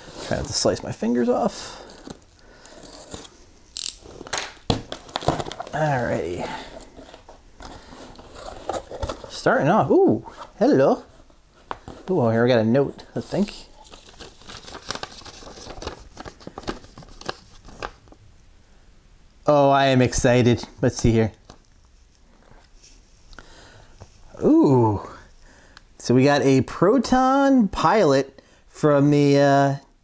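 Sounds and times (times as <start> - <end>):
paper crinkling and rustling: 0.0 - 3.4, 4.0 - 9.6, 13.0 - 18.2
packing tape hissing: 1.6 - 9.0
packing tape ripping: 2.0 - 6.0.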